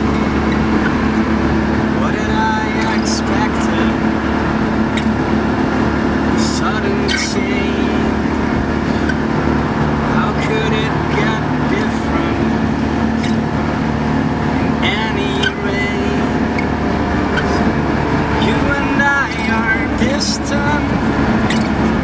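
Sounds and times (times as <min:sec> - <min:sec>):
car engine droning: 0:00.0 - 0:22.0
strummed acoustic guitar: 0:00.0 - 0:22.0
man talking: 0:02.0 - 0:04.0, 0:18.4 - 0:20.9.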